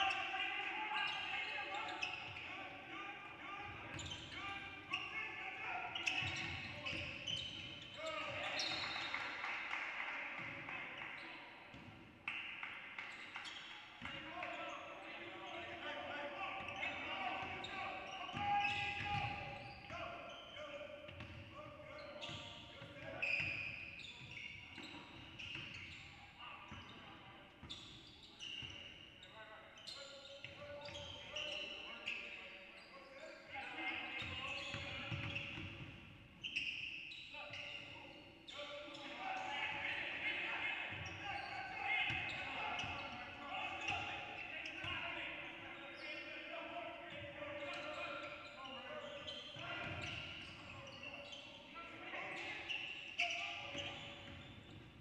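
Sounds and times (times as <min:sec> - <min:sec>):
basketball bouncing on court: 0:06.0 - 0:09.2, 0:16.7 - 0:20.0, 0:21.1 - 0:21.5, 0:34.2 - 0:36.0, 0:53.7 - 0:55.0.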